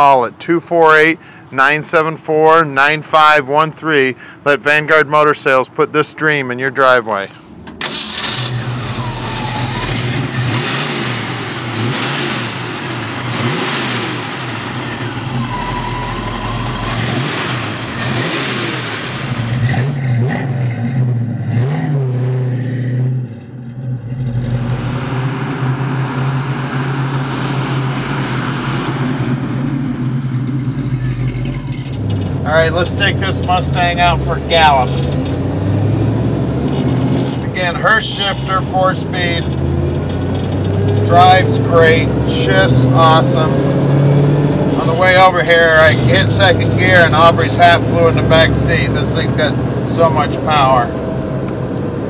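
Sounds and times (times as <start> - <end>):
car engine idling and revving: 7.3 - 52.0.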